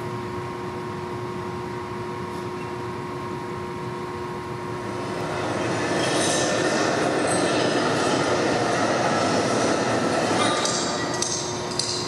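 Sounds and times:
music over rink speakers: 8.4s - 12.0s.

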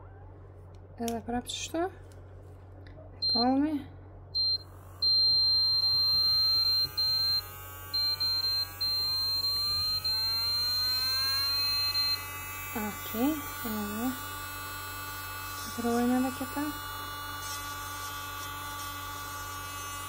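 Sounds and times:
high steady tone: 4.4s - 13.3s
nail drill motor whining: 4.4s - 20.0s.

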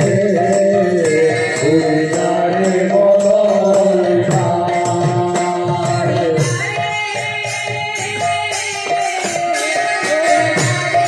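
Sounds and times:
drum and percussion strokes: 0.0s - 11.0s
woman singing into microphone: 5.2s - 11.0s.

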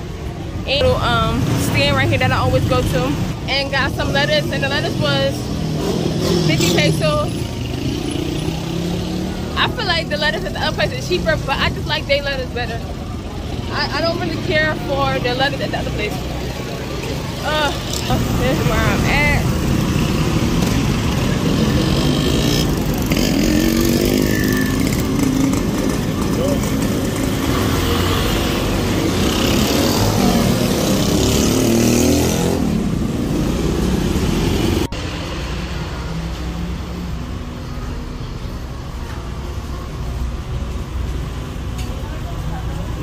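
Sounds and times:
street background noise: 0.0s - 43.0s
motorcycles passing close by: 0.7s - 37.2s.

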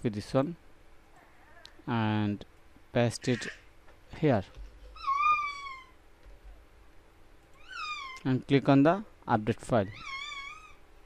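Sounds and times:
cat meowing: 5.0s - 6.0s, 7.6s - 8.2s, 9.9s - 10.8s.

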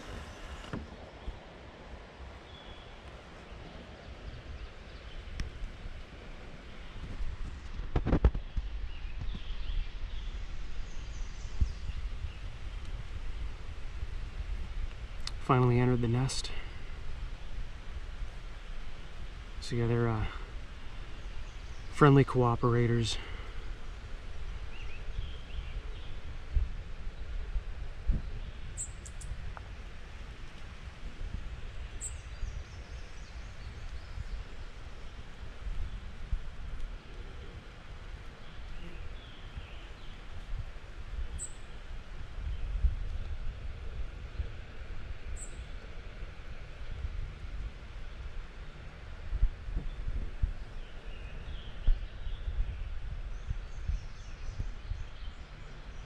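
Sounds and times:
low rumble on microphone: 0.0s - 56.0s.

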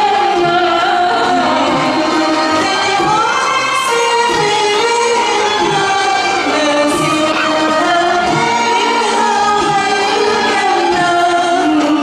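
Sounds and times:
band with hand drums: 0.0s - 12.0s
person singing: 0.0s - 12.0s.

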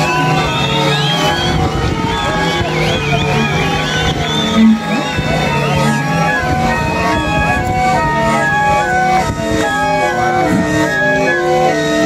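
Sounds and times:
end-blown pipes chord: 0.0s - 12.0s
wavering high tones sliding: 0.0s - 12.0s.

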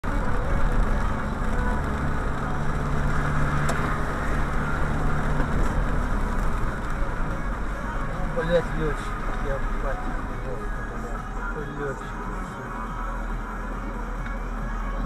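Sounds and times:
car engine hum: 0.0s - 15.0s
tyres on wet road: 0.0s - 15.0s.

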